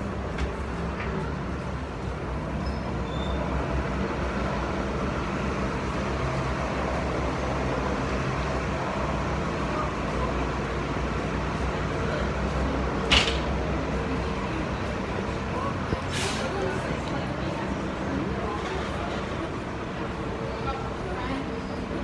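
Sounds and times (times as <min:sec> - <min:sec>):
bus passing and pulling away: 0:00.0 - 0:22.0
street traffic: 0:00.0 - 0:22.0.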